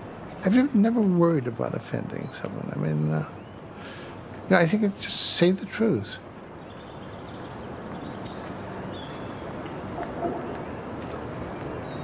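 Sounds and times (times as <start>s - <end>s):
distant traffic hum: 0.0s - 12.0s.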